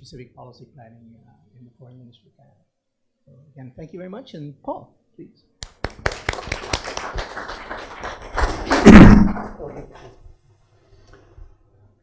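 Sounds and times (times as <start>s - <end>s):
heavy thud with rustling: 8.3s - 9.7s.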